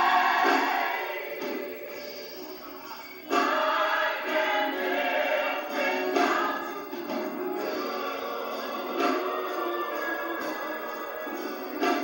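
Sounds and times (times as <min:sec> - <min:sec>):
gospel choir singing with music: 0:00.0 - 0:12.0.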